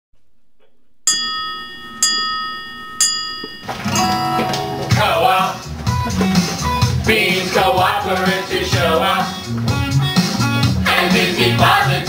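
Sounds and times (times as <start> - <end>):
bell ringing: 1.1 - 5.7
music: 3.8 - 12.0.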